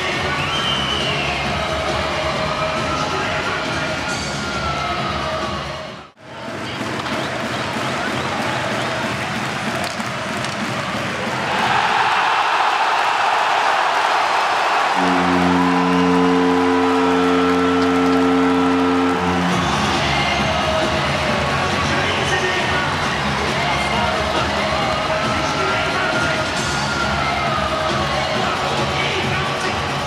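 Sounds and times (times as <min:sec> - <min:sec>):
crowd cheering: 0:07.2 - 0:29.8
goal horn: 0:14.9 - 0:21.2.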